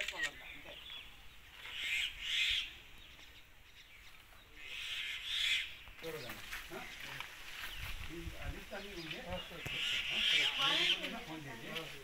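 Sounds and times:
harsh raspy bird calls: 0:00.0 - 0:07.0, 0:08.8 - 0:11.5.

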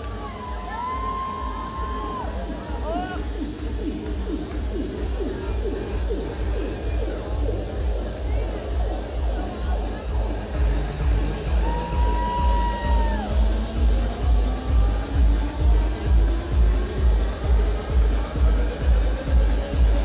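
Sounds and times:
electronic dance music: 0:00.0 - 0:20.0.

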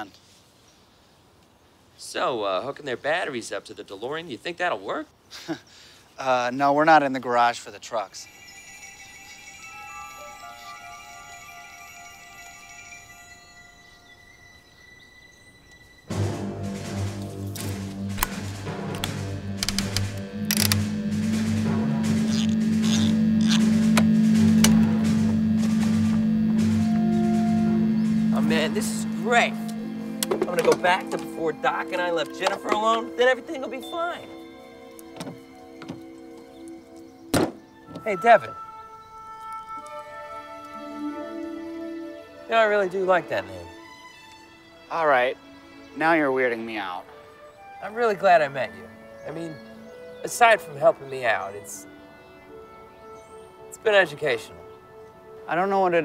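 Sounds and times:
faint music: 0:06.7 - 0:56.0
loud low speaker hum: 0:18.1 - 0:30.6
control panel switches clicking: 0:18.2 - 0:20.9
solid thunk: 0:37.3 - 0:37.6.

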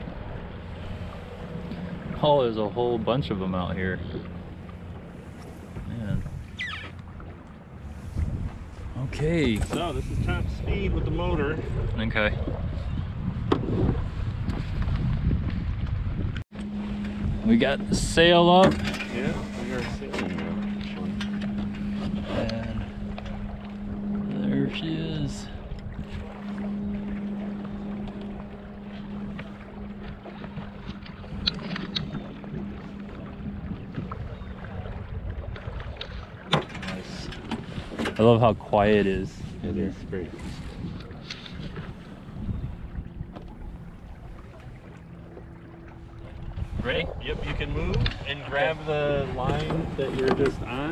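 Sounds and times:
outboard motor: 0:00.0 - 0:50.9
water along hull: 0:00.0 - 0:50.9
wind on microphone: 0:03.7 - 0:06.9, 0:07.7 - 0:50.9.

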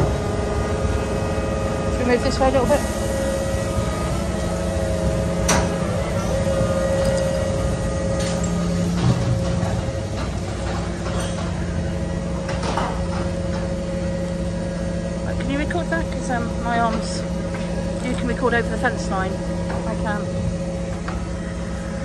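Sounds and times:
diesel crane engine humming: 0:00.0 - 0:22.0.

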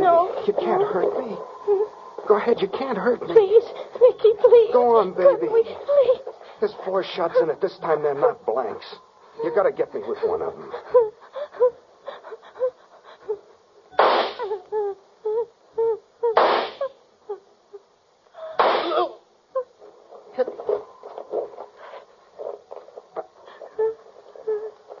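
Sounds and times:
woman sobbing and whimpering: 0:00.0 - 0:02.2, 0:03.2 - 0:07.7, 0:09.4 - 0:13.6, 0:14.4 - 0:20.0, 0:22.4 - 0:25.0
pistol shots: 0:14.0 - 0:14.4, 0:18.6 - 0:19.0.

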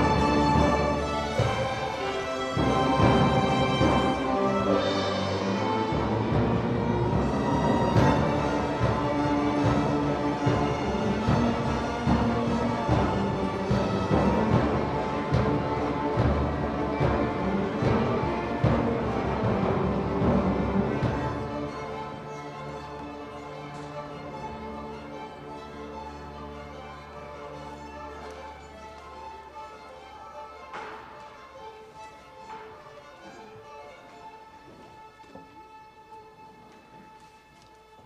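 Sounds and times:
string orchestra playing: 0:00.0 - 0:38.0.

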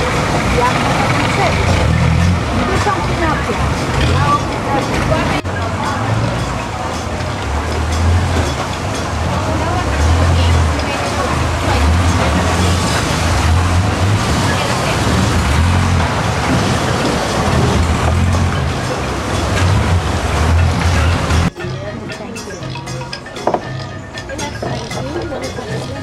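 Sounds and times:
motorboat engine droning: 0:00.0 - 0:26.0
water washing: 0:00.0 - 0:26.0.

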